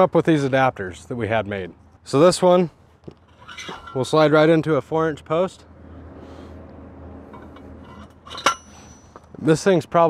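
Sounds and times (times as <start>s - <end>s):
metal scraping on metal post: 3.1s - 4.4s, 7.2s - 9.4s.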